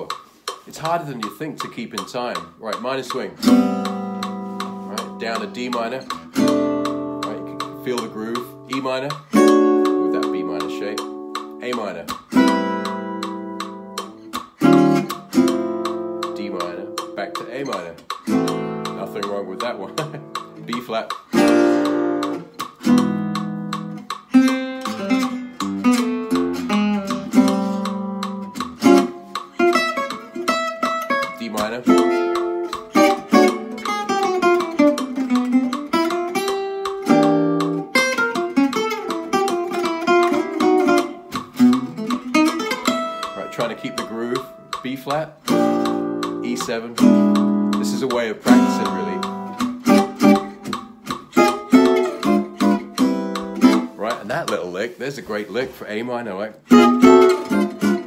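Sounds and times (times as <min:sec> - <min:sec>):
acoustic guitar played with a pick: 0:00.0 - 0:58.0.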